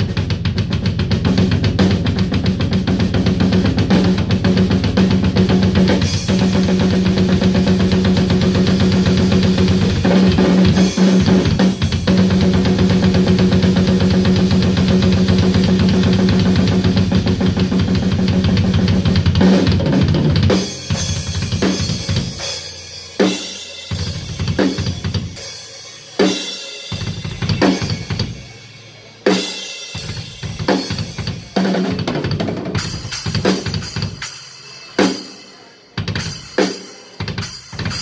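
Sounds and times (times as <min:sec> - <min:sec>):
drum kit playing: 0:00.0 - 0:38.0.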